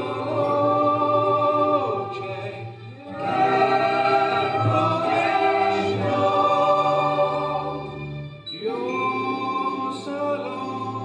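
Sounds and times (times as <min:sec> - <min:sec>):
mixed choir singing: 0:00.0 - 0:11.0
violins and guitar: 0:00.0 - 0:11.0.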